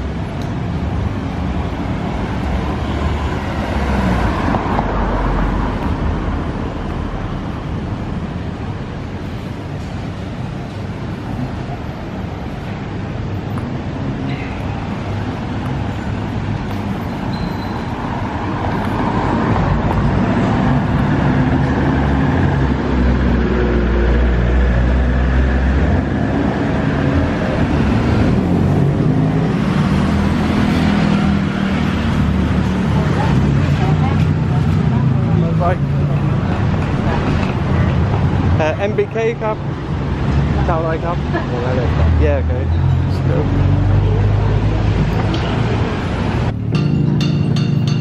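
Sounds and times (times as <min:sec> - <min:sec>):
vehicle engines passing: 0:00.0 - 0:48.0.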